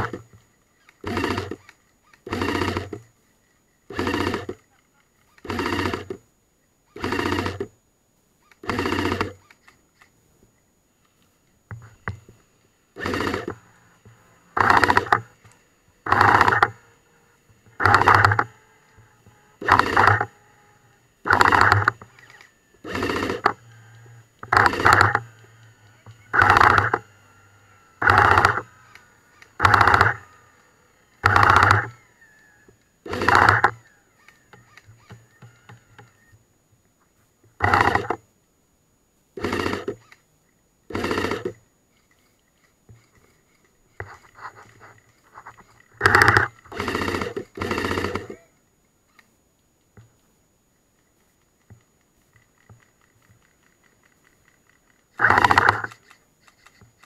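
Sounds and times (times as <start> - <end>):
airsoft gun firing bursts: 0.0 - 3.0, 3.9 - 4.7, 5.3 - 6.2, 6.9 - 7.7, 8.6 - 9.6, 12.9 - 16.9, 17.6 - 20.6, 21.2 - 27.1, 28.0 - 32.2, 33.0 - 36.3, 37.6 - 38.2, 39.4 - 40.2, 40.9 - 41.6, 46.0 - 48.5, 55.1 - 57.0.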